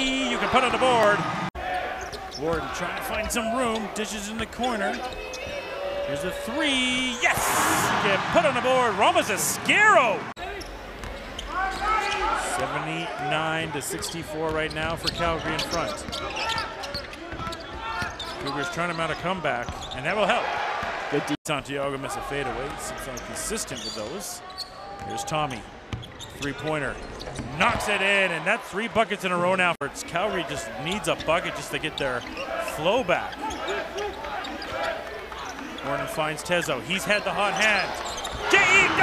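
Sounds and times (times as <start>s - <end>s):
voices of players and crowd: 0.0s - 39.0s
murmur of gym crowd: 30.0s - 39.0s.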